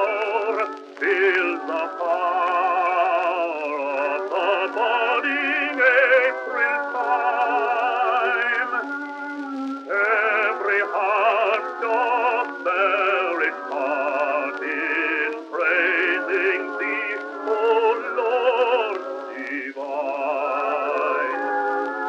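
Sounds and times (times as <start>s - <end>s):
bass-baritone singing a hymn: 0.0s - 8.9s, 9.9s - 21.8s.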